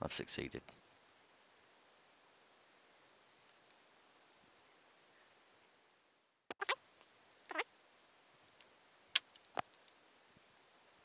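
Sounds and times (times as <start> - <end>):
faint room hiss: 0.2 - 11.0.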